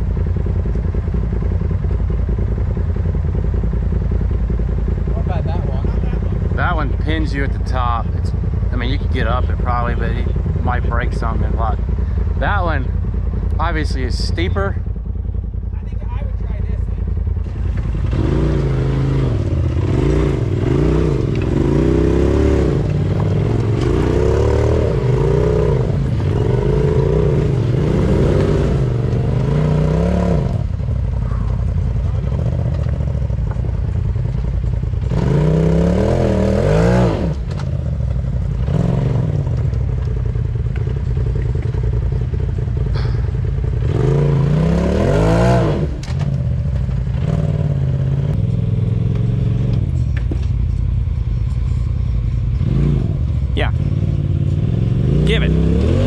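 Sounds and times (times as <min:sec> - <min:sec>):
engine revving hard: 0:17.8 - 0:30.7, 0:35.1 - 0:37.4, 0:38.6 - 0:39.4, 0:43.8 - 0:46.1, 0:52.6 - 0:56.0.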